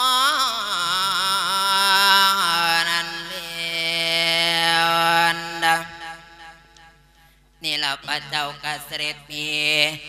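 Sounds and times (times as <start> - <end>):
person chanting through microphone: 0.0 - 6.8, 7.6 - 10.0.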